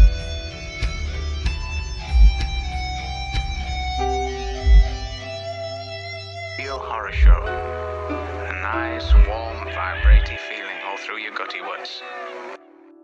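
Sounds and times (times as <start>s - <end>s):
plucked guitar notes: 0.0s - 11.2s
deep bass thump: 4.6s - 5.3s, 9.0s - 10.4s.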